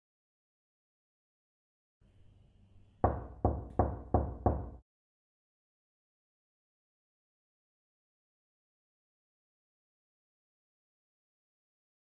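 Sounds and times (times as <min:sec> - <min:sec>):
knocks on a door: 0:03.0 - 0:04.8.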